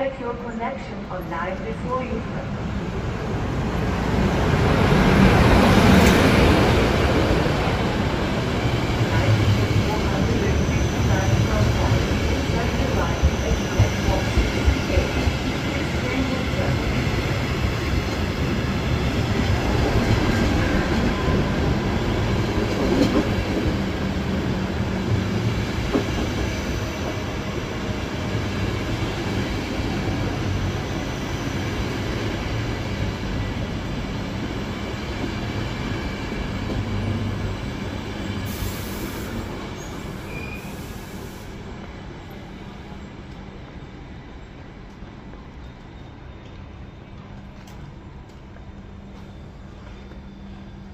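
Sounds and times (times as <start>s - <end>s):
train wheels rumbling on rail: 1.1s - 50.9s.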